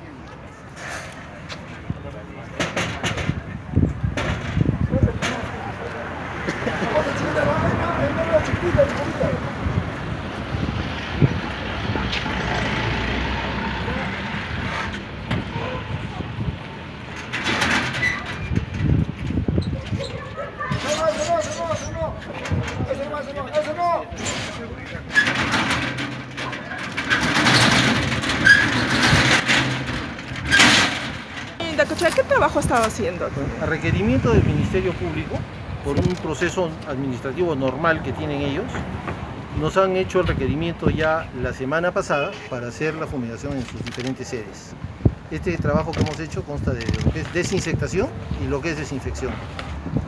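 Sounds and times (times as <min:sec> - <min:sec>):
indistinct voices: 0:00.0 - 0:38.8
street noise: 0:00.0 - 0:50.0.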